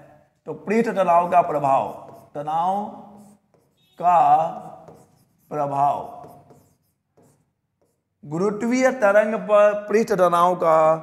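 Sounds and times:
stylus scratching on screen: 0:00.4 - 0:08.3.

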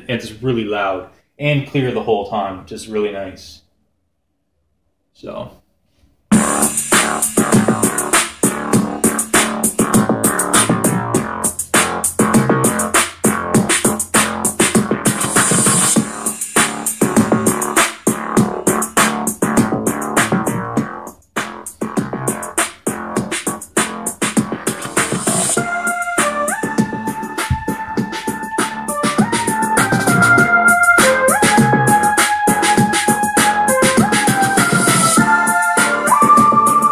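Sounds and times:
upbeat electronic music: 0:06.3 - 0:36.9.

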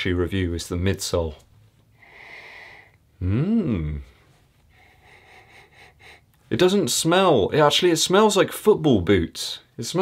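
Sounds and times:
man sniffing: 0:02.0 - 0:06.3.

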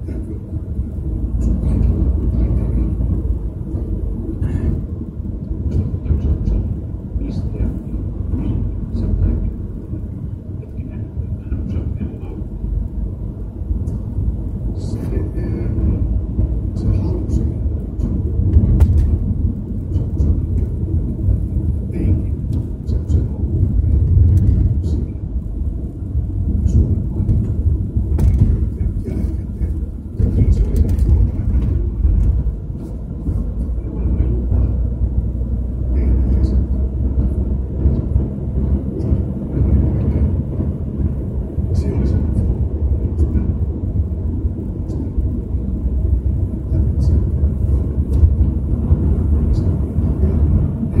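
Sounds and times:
car road and engine rumble: 0:00.0 - 0:51.0.

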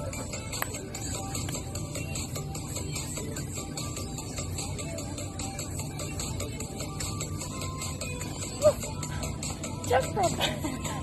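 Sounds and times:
dance music with steady beat: 0:00.0 - 0:11.0.

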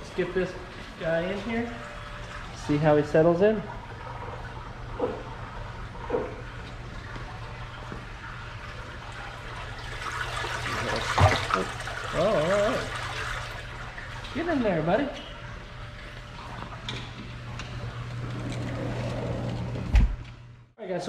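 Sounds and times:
water sloshing and splashing: 0:00.0 - 0:19.1.

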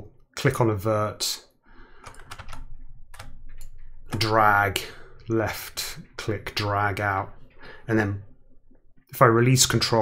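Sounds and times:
keyboard clicking: 0:02.0 - 0:04.4.

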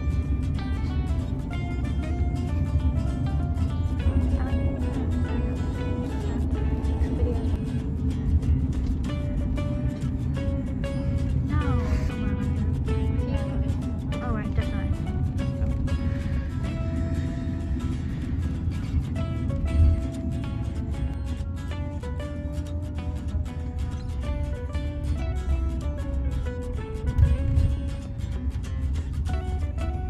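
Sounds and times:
background music with steady beat: 0:00.0 - 0:30.0
car cabin road rumble: 0:00.0 - 0:30.0
person singing: 0:10.8 - 0:15.2.

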